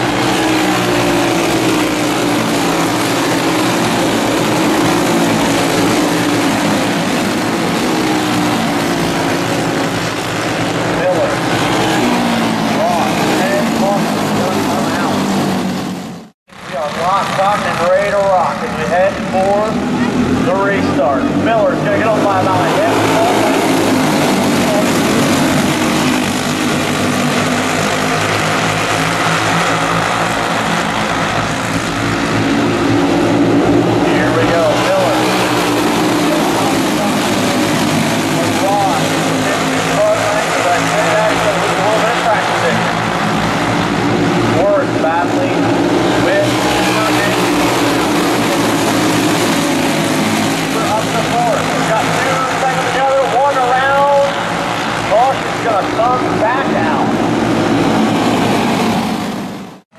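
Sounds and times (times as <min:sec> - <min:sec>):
go-kart engines buzzing: 0:00.0 - 0:59.9.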